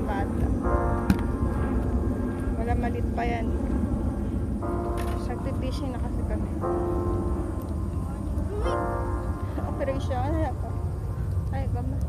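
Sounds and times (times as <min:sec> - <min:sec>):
low outdoor rumble: 0:00.0 - 0:12.0.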